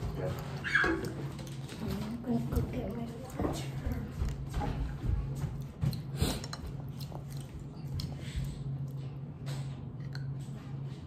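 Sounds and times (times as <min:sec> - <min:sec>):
steady low hum: 0:00.0 - 0:11.0
chewing: 0:05.2 - 0:09.3.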